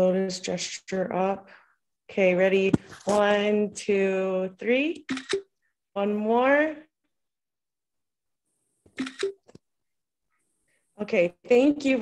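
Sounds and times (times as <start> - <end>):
camera shutter snap: 5.1 - 5.5, 9.0 - 9.4.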